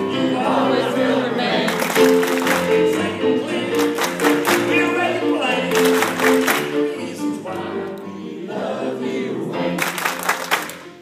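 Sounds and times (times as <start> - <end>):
people singing: 0.0 - 10.3
piano playing sustained chords: 0.0 - 11.0.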